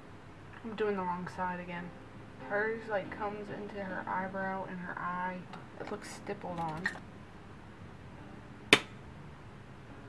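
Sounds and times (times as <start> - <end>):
sharp click: 8.7 - 9.0.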